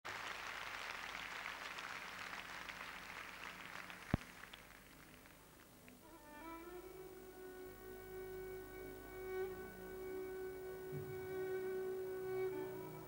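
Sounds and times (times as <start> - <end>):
audience applause: 0.1 - 6.0.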